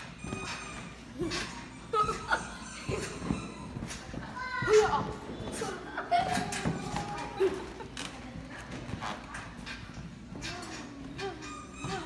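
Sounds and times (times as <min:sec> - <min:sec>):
feet landing on trampoline: 0:00.0 - 0:07.6
indoor play area hubbub: 0:00.0 - 0:12.0.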